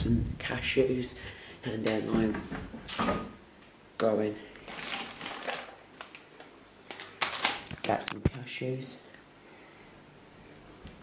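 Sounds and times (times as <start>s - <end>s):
person speaking: 0.0s - 2.5s, 7.6s - 9.2s.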